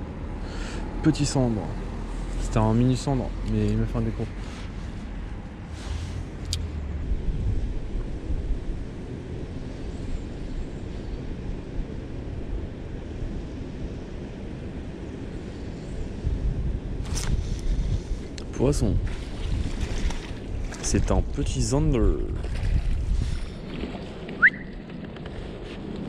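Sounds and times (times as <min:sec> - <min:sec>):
distant road traffic rumble: 0:00.0 - 0:22.3.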